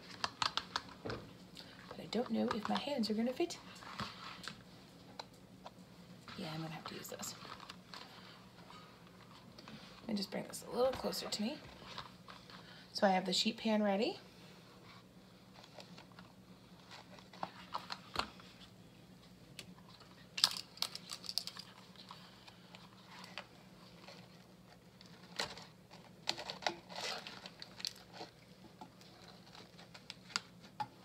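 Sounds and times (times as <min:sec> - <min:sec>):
aluminium foil crinkling: 0:00.0 - 0:04.6, 0:06.4 - 0:12.8, 0:15.5 - 0:18.6, 0:19.7 - 0:30.8
faint low hum: 0:00.0 - 0:31.0.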